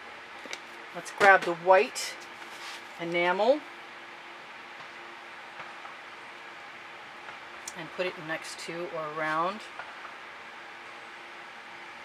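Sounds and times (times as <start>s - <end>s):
low even hum: 0.0s - 12.0s.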